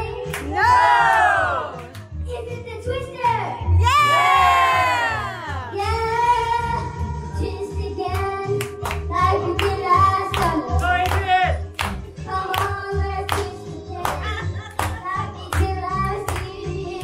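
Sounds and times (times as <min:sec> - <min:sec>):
child singing into a microphone: 0:05.7 - 0:10.8, 0:12.3 - 0:17.0.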